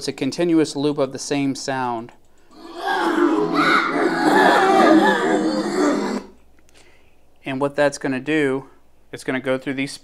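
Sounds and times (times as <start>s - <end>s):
overlapping spooky voices: 2.6s - 6.4s.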